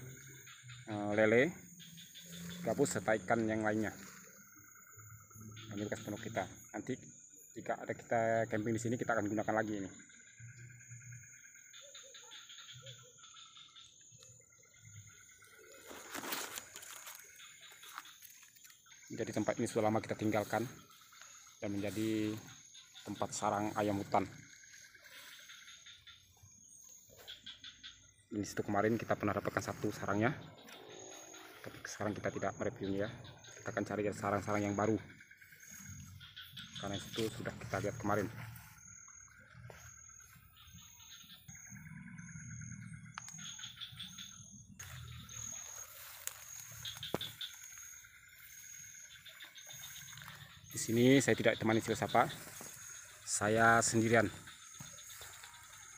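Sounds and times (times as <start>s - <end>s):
high-pitched insect drone: 0.0s - 55.9s
rustling through undergrowth: 15.1s - 19.0s, 44.8s - 55.9s
pulsing trills: 16.6s - 55.9s.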